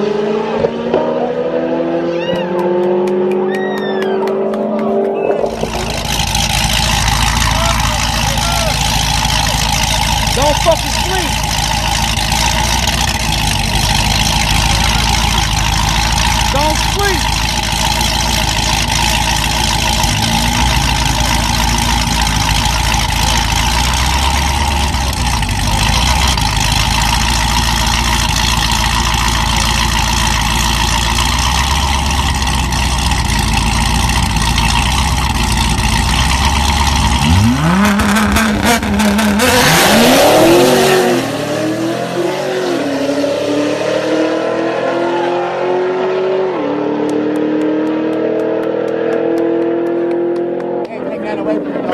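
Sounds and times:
cars accelerating through upshifts: 0.0 - 27.5, 36.1 - 51.9
race car engines revving: 0.0 - 51.9.

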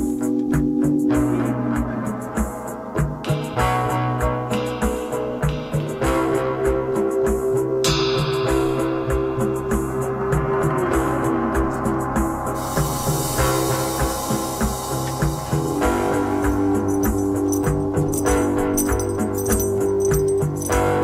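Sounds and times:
drums: 0.0 - 21.0
high hissing wash: 12.5 - 17.8
rattling hand percussion: 15.2 - 21.0.

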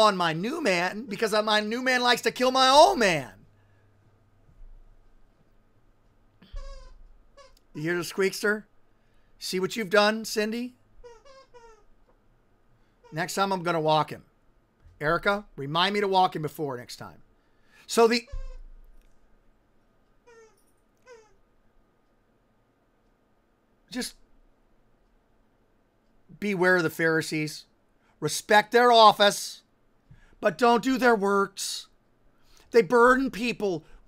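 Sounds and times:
dog whining: 11.0 - 11.9, 20.2 - 21.4.

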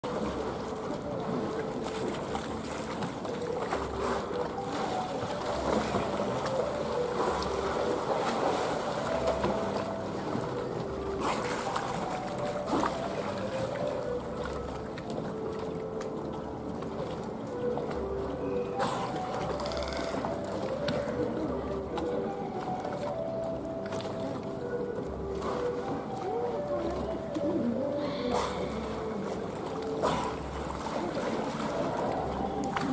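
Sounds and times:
background music: 0.0 - 32.9
water lapping: 0.0 - 32.9.

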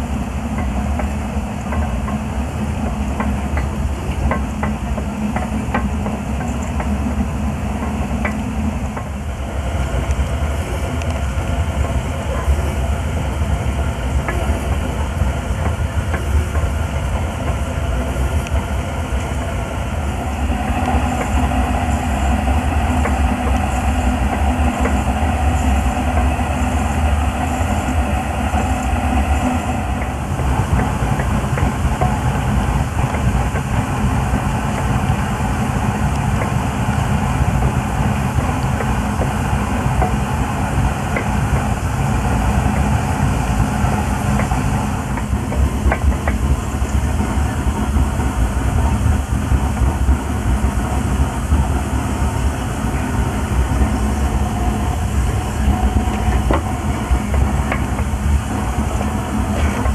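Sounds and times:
steam hoist engine and gearing: 0.0 - 59.9.

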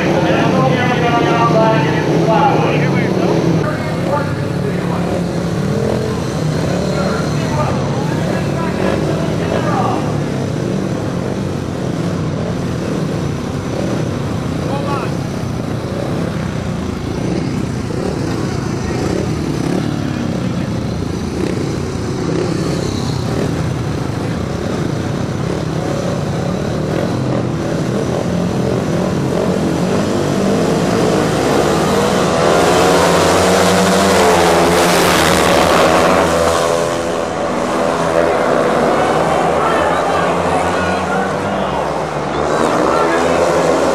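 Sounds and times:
motorcycle engines revving: 0.0 - 43.9.

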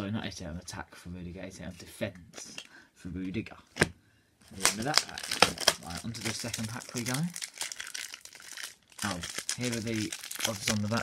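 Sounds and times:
plastic wrapper crinkling: 4.5 - 11.0.

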